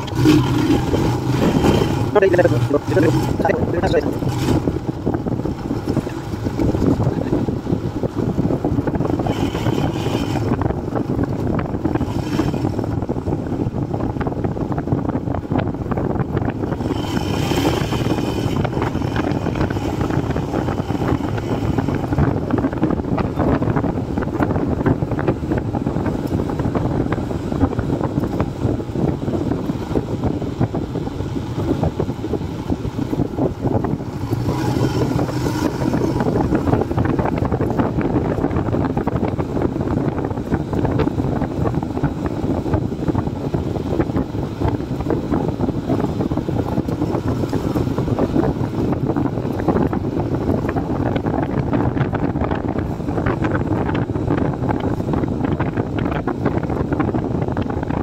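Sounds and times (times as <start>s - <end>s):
motorcycle engine running: 0.0s - 58.0s.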